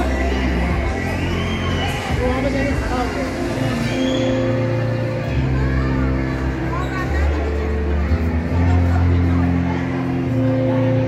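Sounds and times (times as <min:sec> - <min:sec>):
children's voices and shouting: 0:00.0 - 0:11.0
music with deep bass line: 0:00.0 - 0:11.0.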